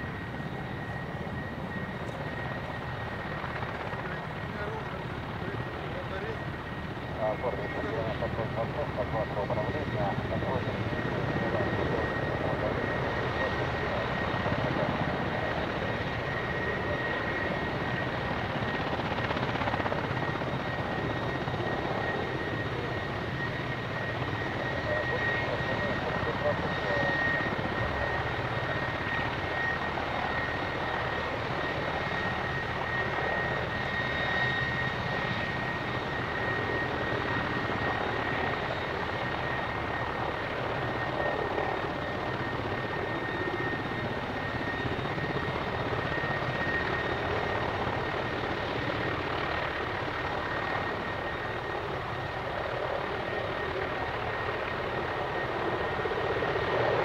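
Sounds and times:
helicopter engine and rotor noise: 0.0s - 57.0s
high turbine whine: 0.0s - 57.0s.

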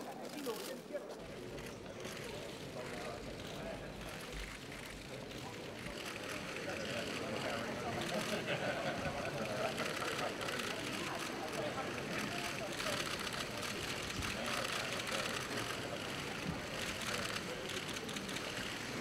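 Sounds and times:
indistinct chatter of many people: 0.0s - 19.0s.

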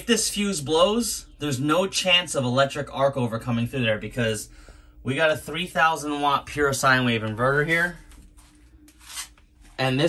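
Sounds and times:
man talking: 0.0s - 8.1s, 9.8s - 10.0s
faint steady hum: 0.0s - 10.0s
soft breathy noise: 4.4s - 5.1s.

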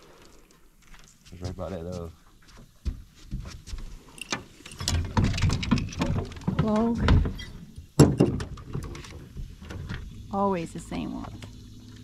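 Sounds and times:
fishing tackle clicks and rustling: 0.0s - 1.4s, 3.8s - 6.9s.

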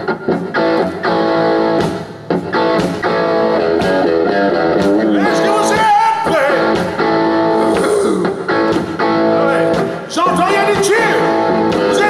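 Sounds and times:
country-rock band playing: 0.0s - 12.0s.

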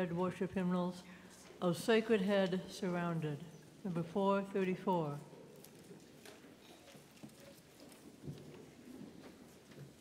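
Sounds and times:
faint footsteps: 5.3s - 10.0s.

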